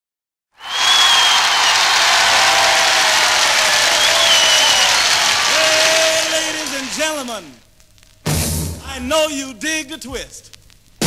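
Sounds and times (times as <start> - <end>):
high whistles: 0.6 - 7.4
crowd applauding and cheering: 0.6 - 7.6.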